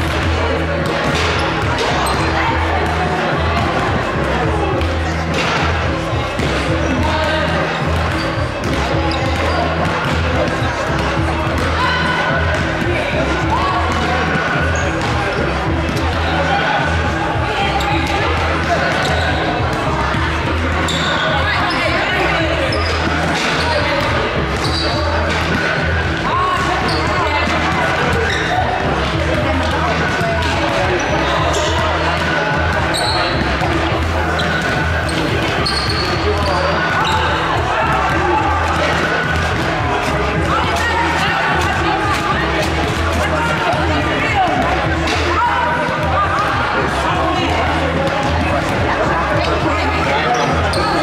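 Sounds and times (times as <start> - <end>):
murmur of voices: 0.0 - 51.0.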